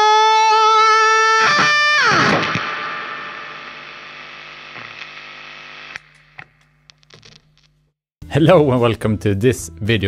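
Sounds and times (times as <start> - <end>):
electric guitar chord with wah: 0.0 - 4.6
amplifier hum and hiss: 1.6 - 7.9.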